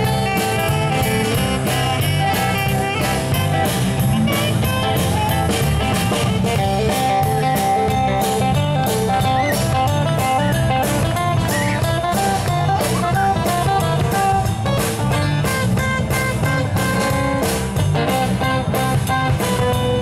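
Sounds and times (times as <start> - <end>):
acoustic guitars strumming: 0.0 - 20.0
drum kit beat: 0.0 - 20.0
electric bass: 0.0 - 20.0
saxophone melody: 0.0 - 20.0.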